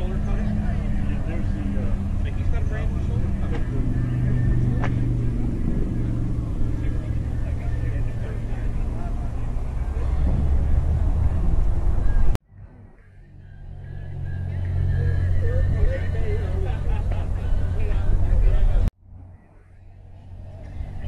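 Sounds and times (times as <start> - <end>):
faint voices: 0.0 - 21.0
steady low rumble: 0.0 - 21.0.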